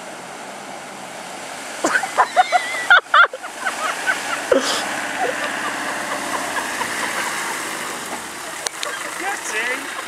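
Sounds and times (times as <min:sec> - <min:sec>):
car engine running: 0:00.0 - 0:10.0.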